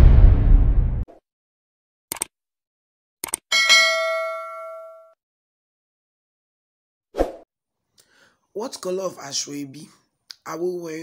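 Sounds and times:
notification bell ding: 3.5 - 5.2.

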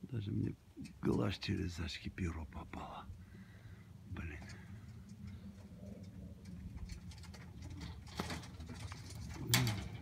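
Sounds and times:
light clicks and rustles: 4.2 - 10.0
pigeons cooing: 4.6 - 10.0.

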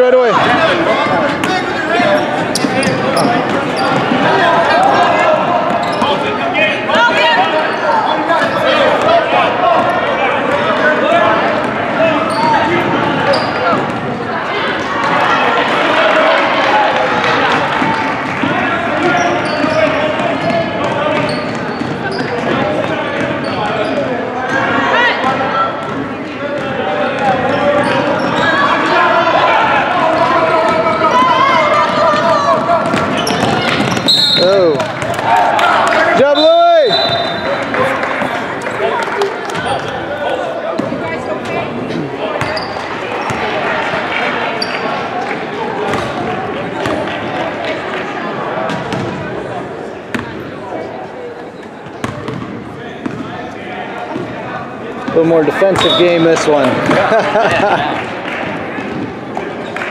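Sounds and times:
spectators chattering and shouting: 0.0 - 59.9.

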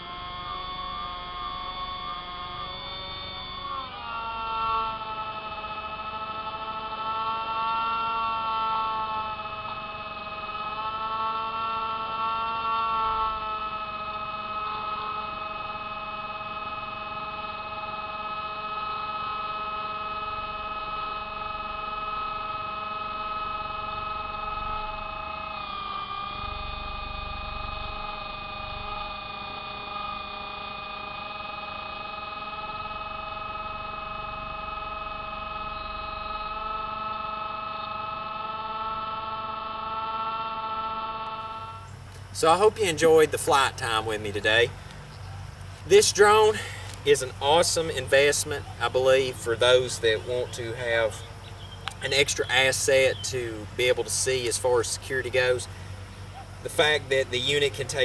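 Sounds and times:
model plane motor whine: 0.0 - 58.0.

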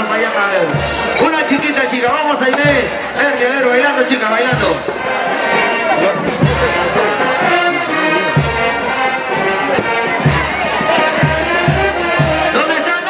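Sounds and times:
brass band dance music: 0.0 - 13.0.

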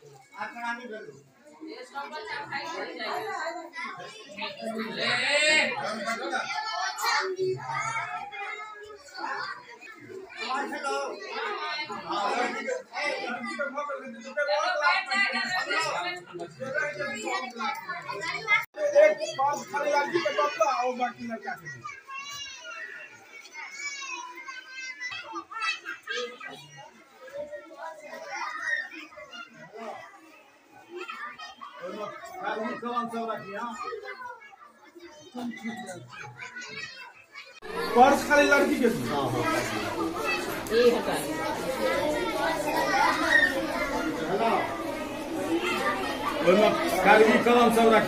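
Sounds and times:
children chattering: 0.0 - 48.0
girls talking and calling: 1.2 - 48.0.

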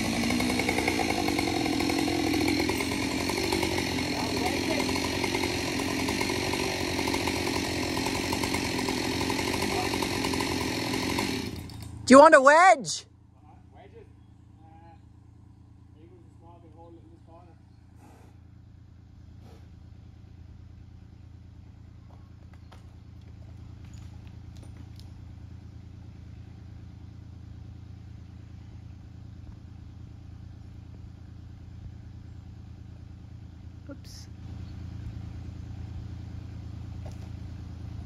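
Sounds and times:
small engine idling: 0.0 - 12.1, 13.1 - 38.0.

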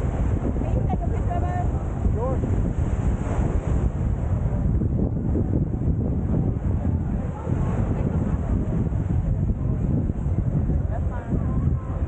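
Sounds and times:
small waves washing onto shore: 0.0 - 12.0
wind buffeting microphone: 0.0 - 12.0.

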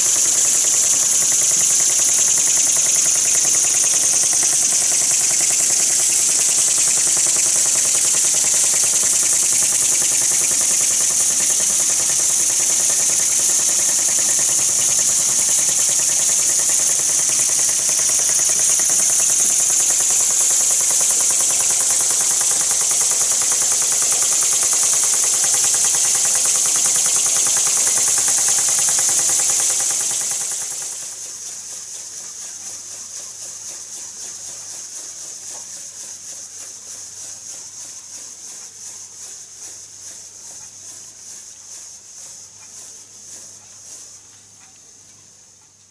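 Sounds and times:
steam hissing: 0.0 - 44.2
model steam engine exhaust beat: 0.0 - 45.9.

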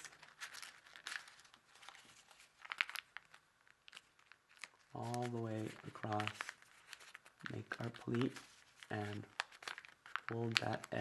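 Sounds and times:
paper crinkling and rustling: 0.0 - 11.0.

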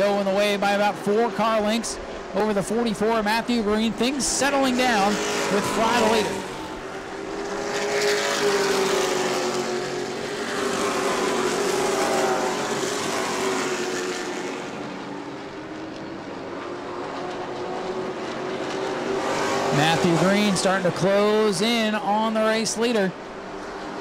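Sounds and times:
race car engines droning: 0.0 - 24.0.

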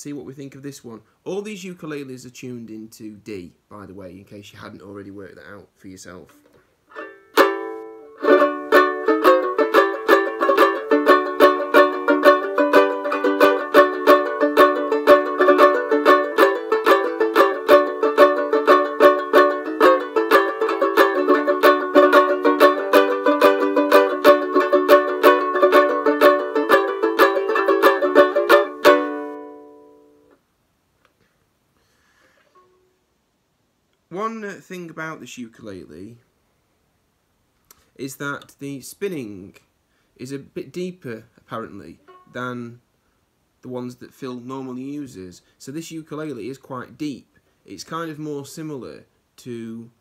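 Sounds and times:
banjo ukulele strumming chords: 6.9 - 30.4, 42.0 - 42.5.

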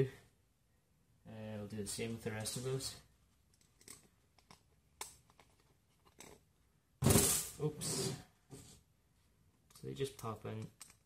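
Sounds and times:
soft clicks and scrapes of bolts: 3.4 - 6.5, 9.5 - 11.0.

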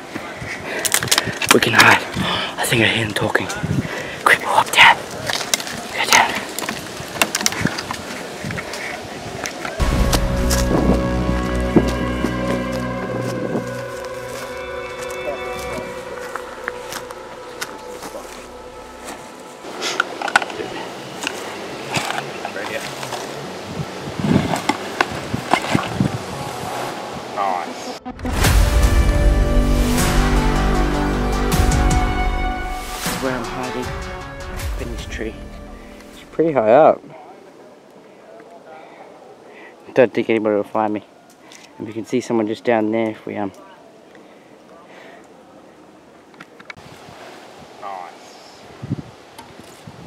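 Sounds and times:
clicks and crunches: 0.8 - 1.6, 5.2 - 8.8
footsteps on dry grass and leaves: 5.1 - 26.3
background music: 9.8 - 36.7.

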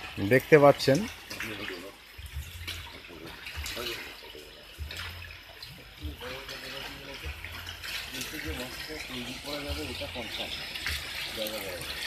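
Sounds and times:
aeration hoses bubbling: 0.0 - 12.0
water splashing and bubbling: 0.0 - 12.0.

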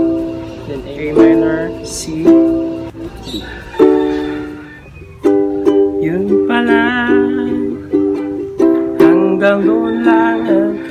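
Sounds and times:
ukulele strumming chords: 0.0 - 10.9.

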